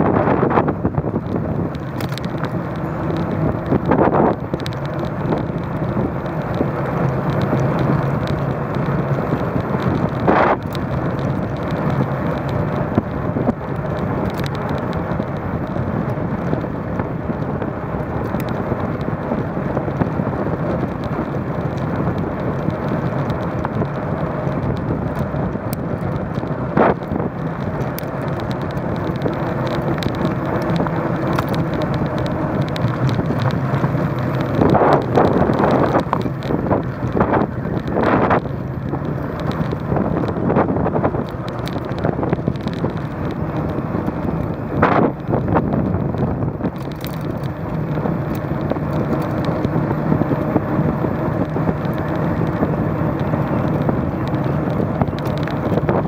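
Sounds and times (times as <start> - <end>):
bicycle road noise on asphalt: 0.0 - 56.0
wind noise: 0.0 - 56.0.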